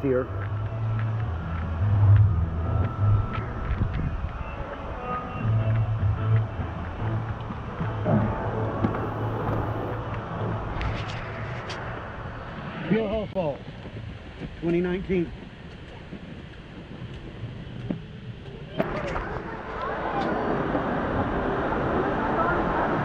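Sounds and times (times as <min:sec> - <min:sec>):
people's voices: 0:00.0 - 0:01.8, 0:18.6 - 0:23.0
low rumbling on microphone: 0:00.0 - 0:23.0.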